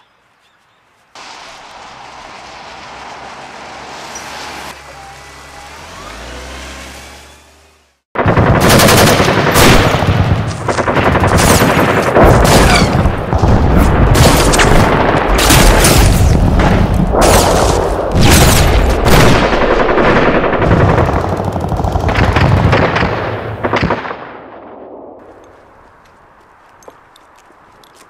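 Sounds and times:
machine-gun fire and gunshots: 8.2 - 25.2.

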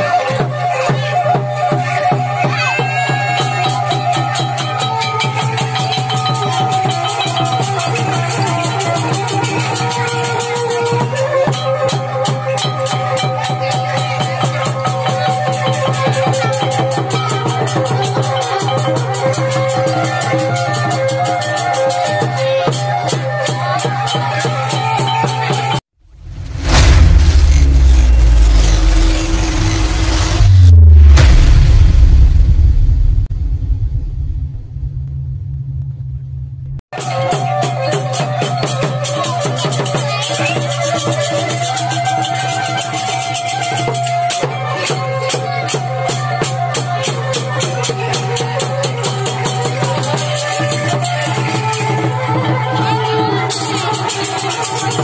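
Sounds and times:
broad rushing noise: 26.0 - 36.8
deep rumble: 26.0 - 36.8.

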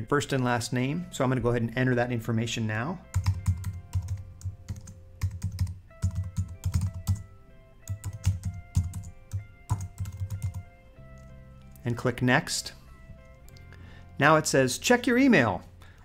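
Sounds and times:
soft background music: 0.0 - 16.0
computer keyboard typing: 3.1 - 7.2, 7.9 - 10.6.

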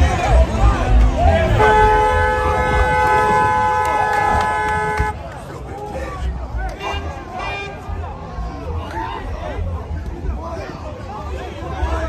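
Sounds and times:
car horn long blast: 1.4 - 5.2.

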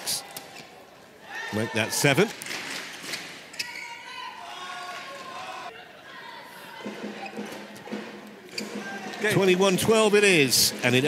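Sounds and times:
spectators' voices in a hall: 0.0 - 11.0.

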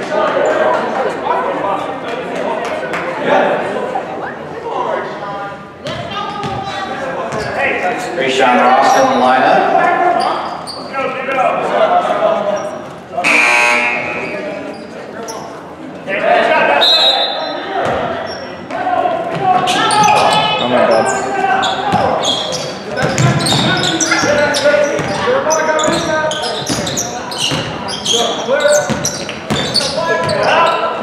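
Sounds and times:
spectators talking: 0.0 - 31.0
sneakers squeaking: 5.8 - 8.2, 10.1 - 10.9, 12.6 - 15.6, 17.0 - 31.0
buzzer: 13.2 - 14.5
basketball bouncing on wooden floor: 23.0 - 23.8.

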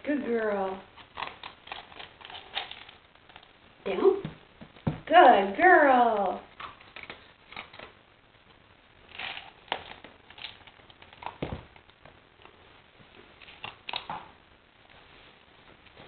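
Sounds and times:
dull thump: 4.2 - 5.1.

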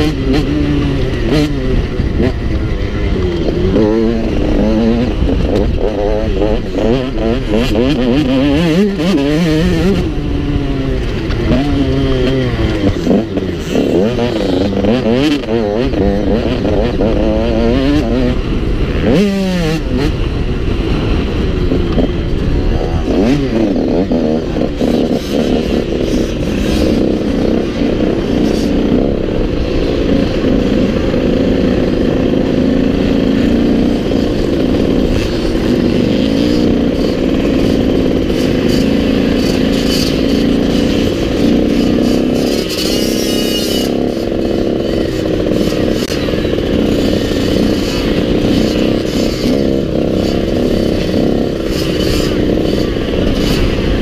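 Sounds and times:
motocross bike engine revving: 0.0 - 54.0.

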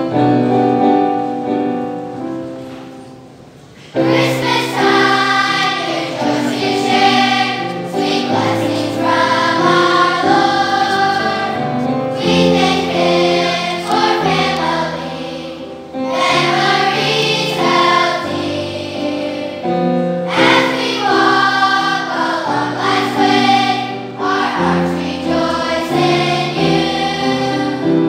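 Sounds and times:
children's choir singing: 3.9 - 28.0.

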